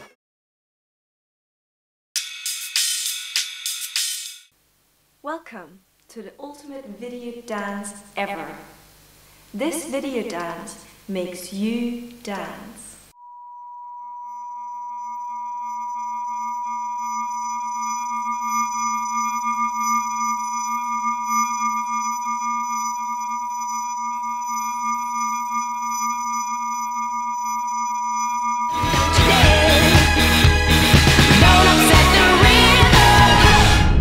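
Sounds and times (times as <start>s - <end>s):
high sine-like tone: 13.1s - 29.7s
loud music: 28.7s - 34.0s.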